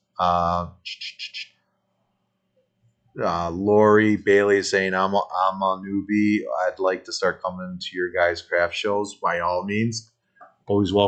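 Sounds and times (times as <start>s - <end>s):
man's voice short sound: 0.2s - 1.4s, 3.2s - 10.0s, 10.7s - 11.0s.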